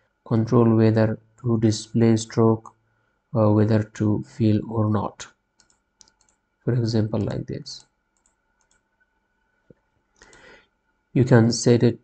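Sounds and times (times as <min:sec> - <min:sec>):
faint ticks: 0:05.6 - 0:06.4, 0:07.8 - 0:10.5
mouse click: 0:05.6 - 0:06.4, 0:07.2 - 0:08.9.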